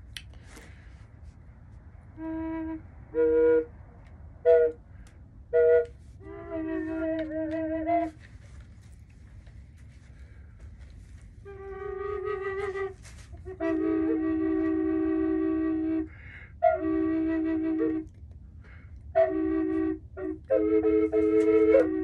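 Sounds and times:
flute playing long held notes: 2.1 - 8.4, 11.3 - 18.2, 19.0 - 22.0.

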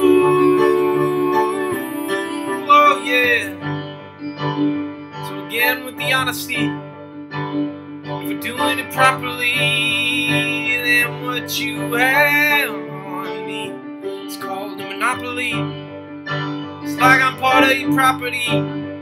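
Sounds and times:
man singing a slow song: 0.0 - 3.6, 5.3 - 6.8, 8.2 - 15.6, 16.9 - 18.6
instrumental accompaniment: 0.0 - 19.0.

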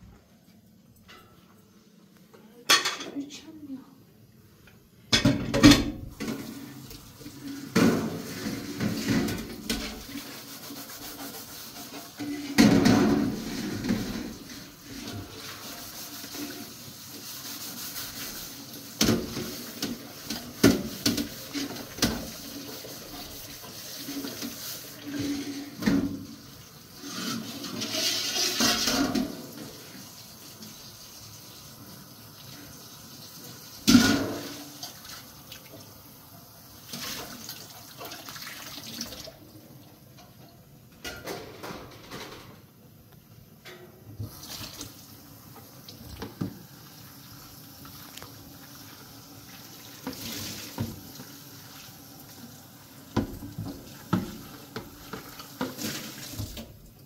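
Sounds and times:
water splashing off metal tray: 36.9 - 39.4, 49.5 - 51.8, 53.2 - 56.7
tap running into metal sink: 53.1 - 56.7.

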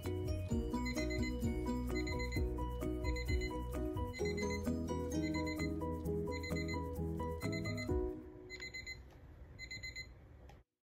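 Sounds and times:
music: 0.0 - 8.6
alarm beeping: 0.8 - 9.0.

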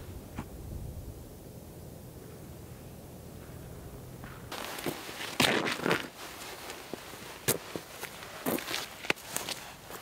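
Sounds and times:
footsteps on frozen ground: 4.2 - 10.0.

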